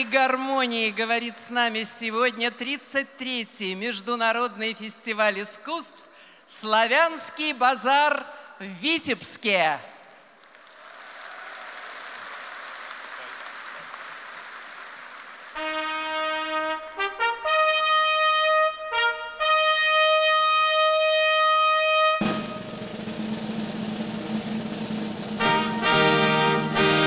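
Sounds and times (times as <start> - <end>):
audience hubbub: 10.7 - 15.6
brass fanfare: 15.6 - 27.0
orchestral music: 15.6 - 27.0.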